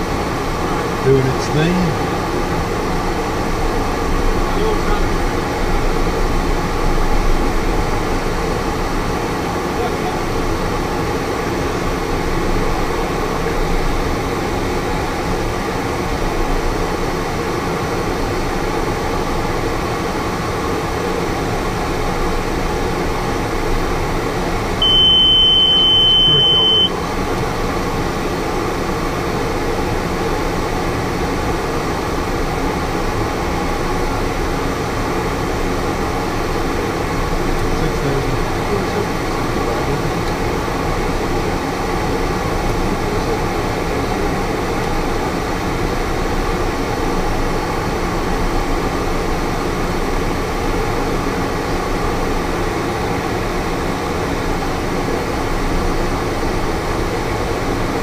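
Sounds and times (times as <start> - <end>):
aircraft engine and airflow: 0.0 - 58.0
high avionics beep: 24.8 - 27.0.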